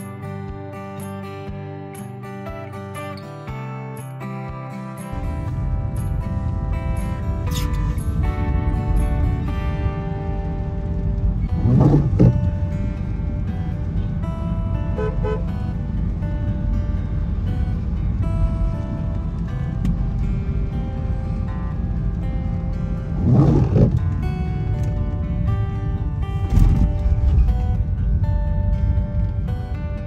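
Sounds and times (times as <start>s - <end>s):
background music: 0.0s - 30.0s
car driving on wet road: 5.1s - 30.0s
loud whooshes: 10.6s - 12.6s, 23.0s - 24.2s.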